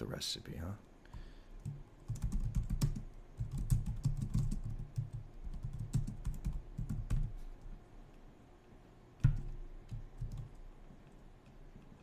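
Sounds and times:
typing on computer keyboard: 1.6 - 7.4, 9.2 - 11.6.

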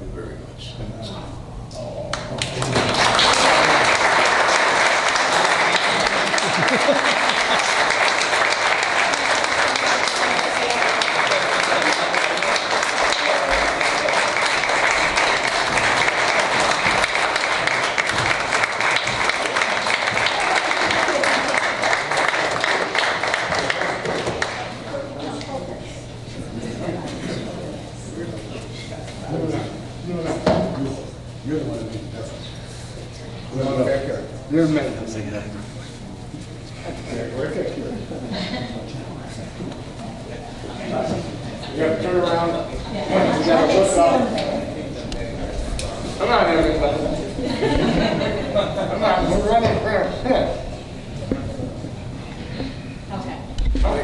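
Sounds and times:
audience applauding: 2.2 - 24.9.

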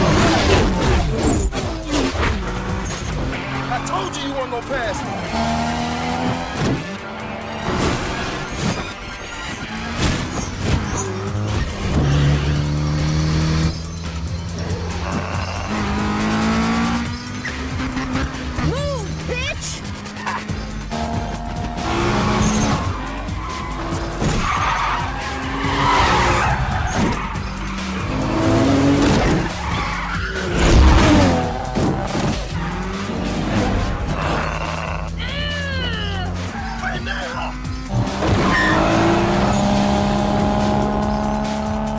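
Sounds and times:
music: 0.0 - 41.9
sports car engines revving: 0.0 - 41.9.

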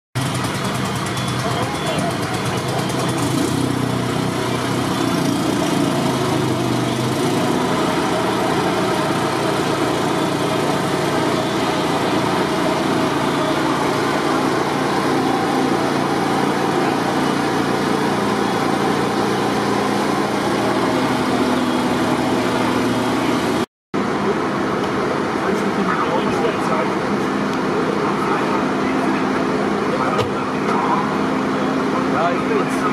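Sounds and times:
fire engine motors running: 0.2 - 32.9.

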